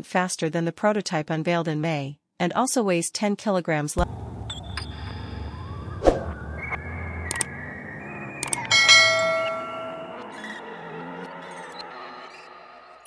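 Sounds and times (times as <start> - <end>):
mouse clicks: 7.3 - 7.5
bright bell chime: 8.1 - 10.5.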